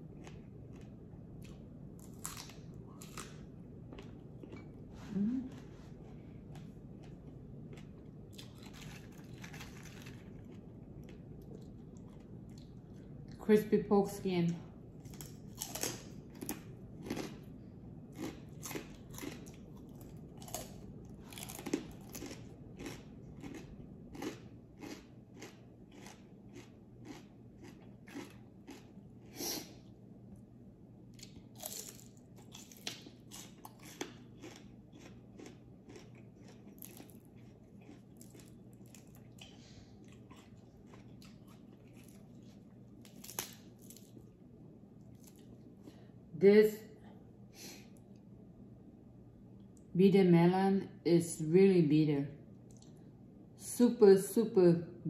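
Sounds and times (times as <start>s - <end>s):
crunchy food chewing: 0.0s - 4.9s, 5.5s - 13.3s, 15.0s - 29.9s, 31.1s - 44.4s, 45.0s - 46.0s
leafy greens chewed: 0.0s - 13.3s, 15.0s - 29.9s, 31.1s - 44.4s.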